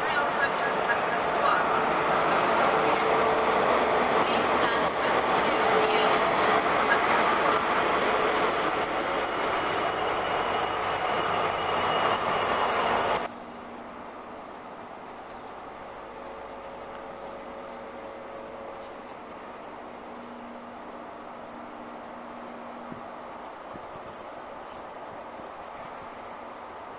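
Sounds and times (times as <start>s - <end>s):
diesel engine hum: 0.0s - 26.9s
trains passing at speed: 0.0s - 26.9s.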